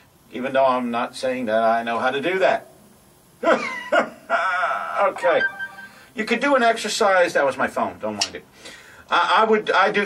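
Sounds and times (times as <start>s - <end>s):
mobile phone ringtone: 5.2s - 6.1s.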